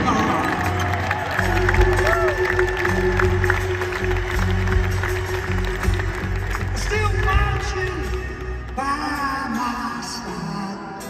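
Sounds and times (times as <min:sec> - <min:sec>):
bass guitar: 0:00.0 - 0:11.0
crowd voices: 0:00.0 - 0:11.0
drums: 0:00.0 - 0:11.0
live rock band playing ballad: 0:00.0 - 0:11.0.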